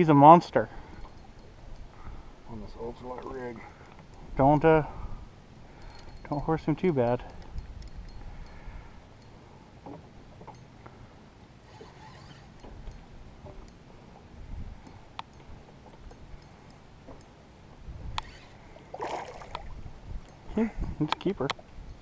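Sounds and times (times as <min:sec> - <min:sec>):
wind rumbling on microphone: 0:00.7 - 0:10.0, 0:11.7 - 0:16.6, 0:17.2 - 0:22.0.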